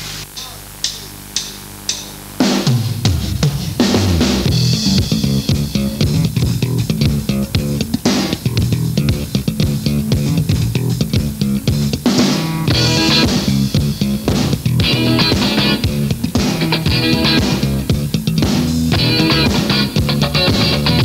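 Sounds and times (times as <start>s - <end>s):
drum kit: 0.0s - 21.0s
bass guitar: 2.6s - 21.0s
guitar: 2.6s - 21.0s.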